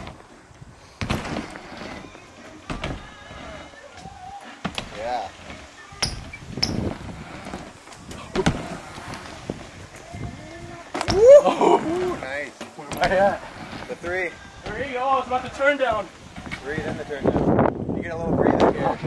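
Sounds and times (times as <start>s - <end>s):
bike tyres rolling on plywood: 0.0s - 19.0s.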